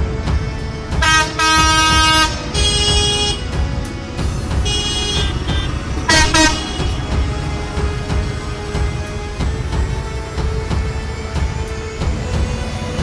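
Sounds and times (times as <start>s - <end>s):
tractor horns honking: 0.8s - 10.4s.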